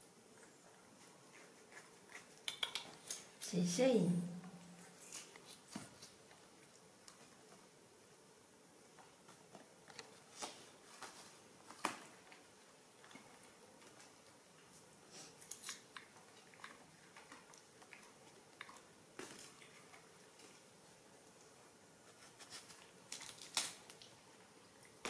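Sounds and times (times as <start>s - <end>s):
monkeys chewing fruit: 0.0s - 3.5s, 4.4s - 7.8s, 8.9s - 25.0s.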